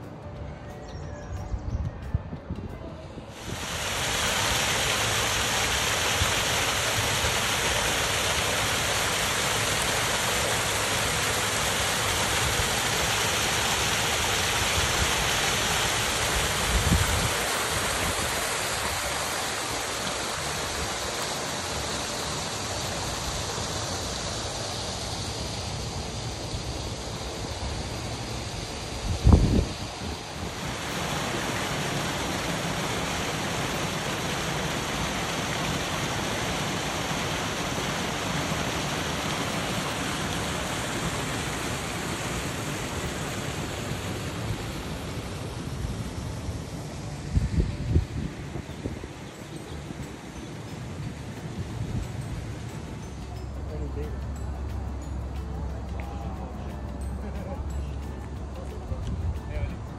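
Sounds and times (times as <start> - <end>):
waterfall over rocks: 3.3 - 59.9.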